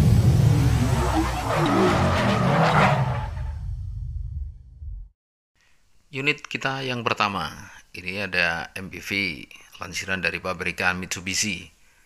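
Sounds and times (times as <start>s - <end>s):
low rumble: 0.0s - 5.1s
car tyre screeching: 0.5s - 3.7s.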